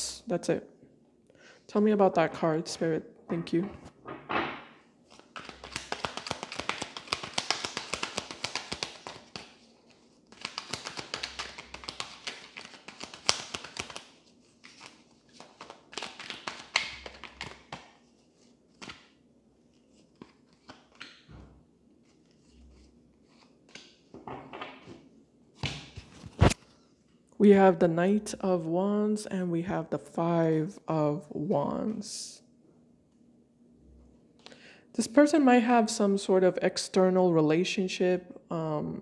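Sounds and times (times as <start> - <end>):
cards being shuffled: 5.1 - 21.3
cards tapping: 5.3 - 9.5, 10.3 - 17.9.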